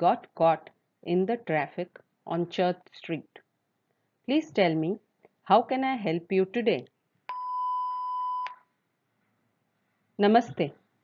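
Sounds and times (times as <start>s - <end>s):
electronic beep: 7.3s - 8.7s.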